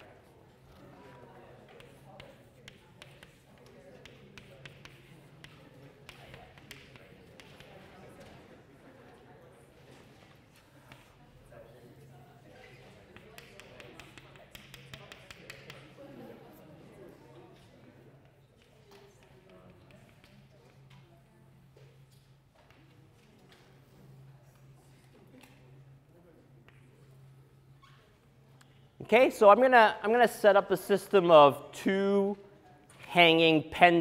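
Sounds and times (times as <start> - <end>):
chalk tapping on a blackboard: 1.6 - 8.0, 10.9 - 11.2, 12.7 - 16.0, 18.2 - 21.0.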